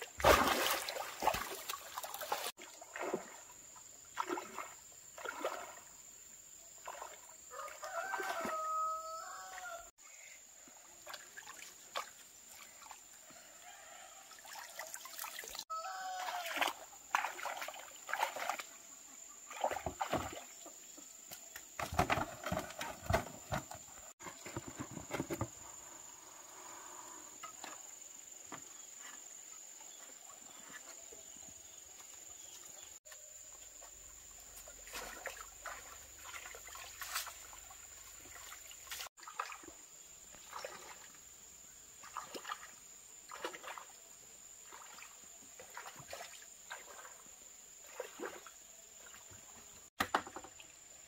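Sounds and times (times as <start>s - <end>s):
water splashing and sloshing: 0.0s - 9.7s, 10.5s - 26.1s, 27.4s - 51.0s
rooster crowing: 7.5s - 9.9s, 13.3s - 14.5s, 15.7s - 16.8s.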